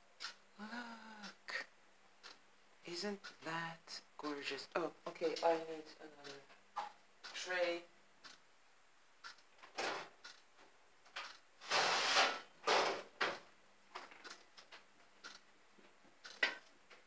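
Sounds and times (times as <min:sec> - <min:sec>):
drawer sliding open and shut: 0:11.6 - 0:13.4.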